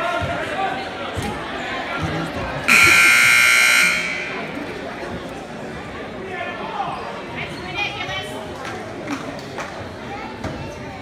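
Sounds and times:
crowd chatter: 0:00.0 - 0:11.0
scoreboard buzzer: 0:02.7 - 0:04.6.

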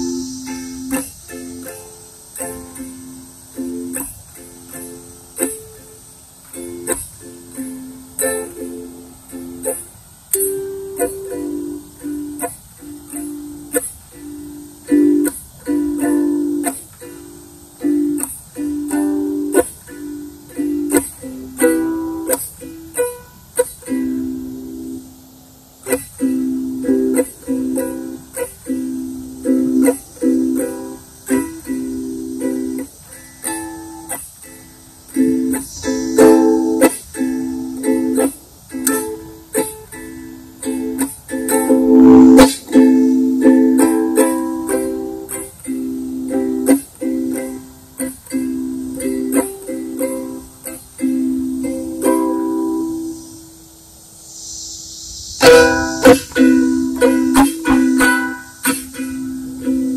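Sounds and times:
ukulele strumming chords: 0:00.0 - 0:53.7, 0:55.4 - 0:59.9.

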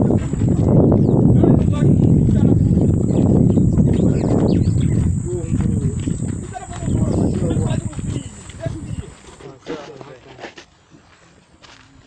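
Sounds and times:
low rumble on microphone: 0:00.0 - 0:09.5
faint voices talking: 0:00.0 - 0:12.0
footsteps on sandy ground: 0:00.0 - 0:12.0.

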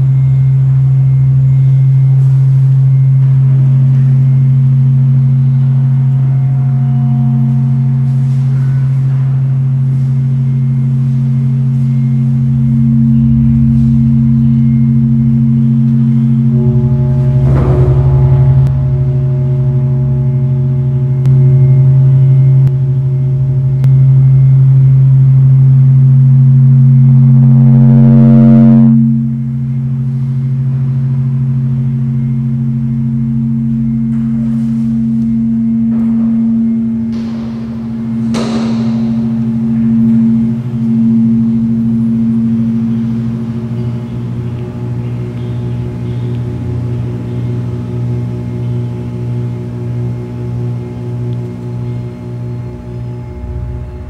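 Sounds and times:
gong-like ringing: 0:00.0 - 0:54.0
low electronic drone: 0:00.0 - 0:54.0
higher held tones: 0:02.8 - 0:47.4
sharp struck accents: 0:12.5 - 0:24.9, 0:33.5 - 0:43.7.

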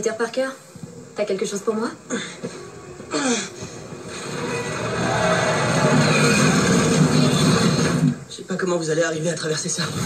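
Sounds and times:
battle noise: 0:04.0 - 0:08.2.

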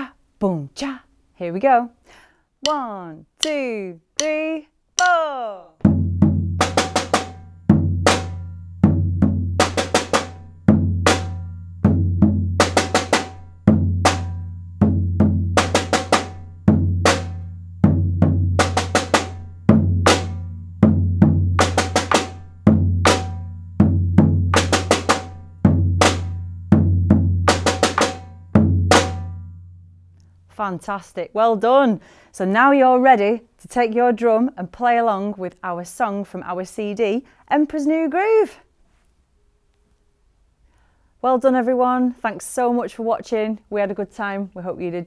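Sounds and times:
bass drum booms: 0:05.8 - 0:28.0.

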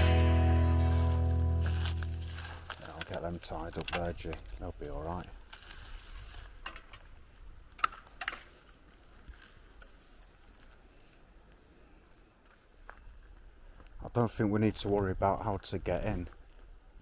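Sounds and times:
faint outdoor background: 0:00.0 - 0:17.0
bike frames rattling: 0:06.4 - 0:07.2.

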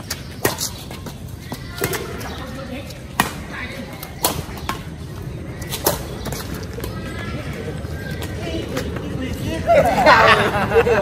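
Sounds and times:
rackets hitting shuttlecock: 0:00.0 - 0:05.0, 0:05.6 - 0:07.1.

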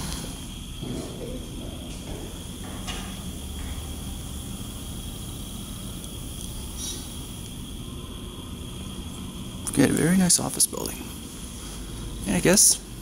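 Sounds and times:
elevator humming: 0:00.0 - 0:13.0.

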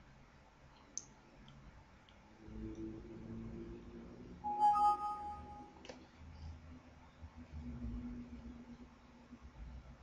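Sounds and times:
rising two-note alert chime: 0:04.5 - 0:05.8.

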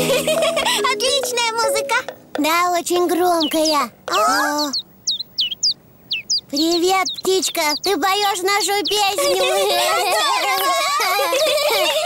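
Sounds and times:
bird chirps: 0:00.9 - 0:09.4.

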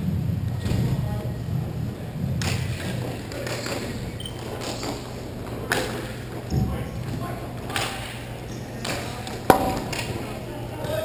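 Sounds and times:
arena noise hum: 0:00.0 - 0:11.0
hockey puck struck hard: 0:09.5 - 0:10.4.

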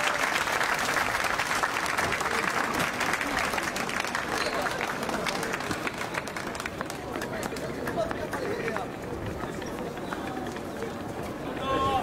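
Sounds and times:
crowd chatting: 0:00.0 - 0:12.0.

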